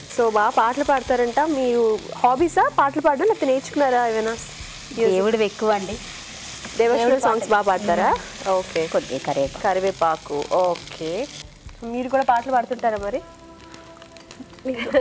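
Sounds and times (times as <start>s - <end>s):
food sizzling in a frying pan: 0.0s - 15.0s
spatula stirring in a pan: 3.4s - 9.7s.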